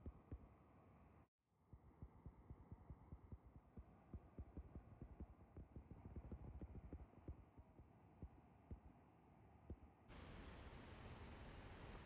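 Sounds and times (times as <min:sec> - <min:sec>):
river pouring over waterfall: 0:10.2 - 0:12.0.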